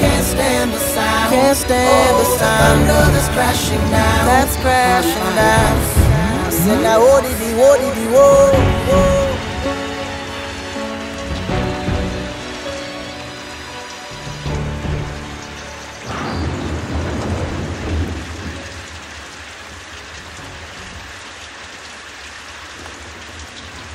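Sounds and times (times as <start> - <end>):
thunder rumble: 0.0 - 10.2, 16.0 - 19.5
pop song chords: 0.0 - 12.8
rain: 0.0 - 23.9.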